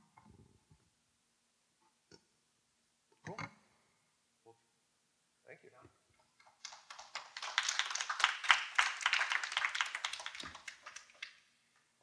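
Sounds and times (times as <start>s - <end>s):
audience applauding: 6.4s - 11.5s.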